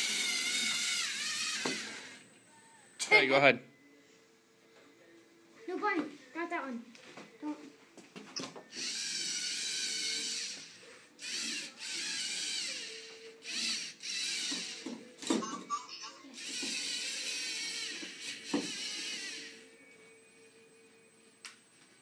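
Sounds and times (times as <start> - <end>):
servo motors whirring: 0.0 - 2.3, 8.7 - 15.3, 16.4 - 19.8.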